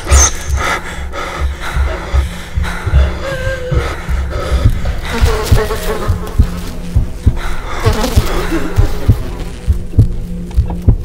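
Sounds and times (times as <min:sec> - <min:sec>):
background music: 0:00.0 - 0:11.0
low heartbeat-like thumps: 0:00.0 - 0:11.0
fly buzzing: 0:01.8 - 0:10.9.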